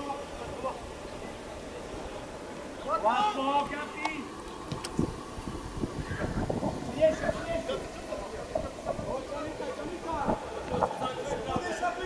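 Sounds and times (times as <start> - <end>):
open-air background noise: 0.0 - 12.0
players shouting: 2.6 - 4.5.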